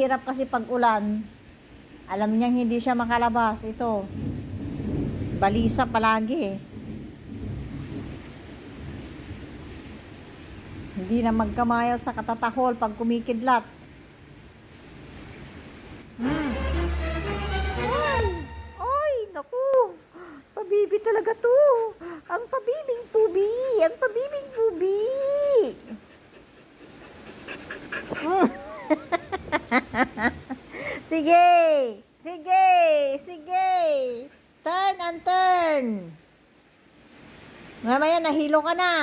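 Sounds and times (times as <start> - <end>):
heavy rain heard from indoors: 0.0 - 39.0
dog panting: 24.2 - 25.1, 25.8 - 29.0.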